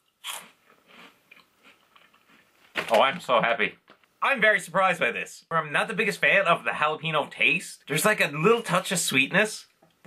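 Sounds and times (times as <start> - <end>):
crunching snack chewing: 0.0 - 3.0.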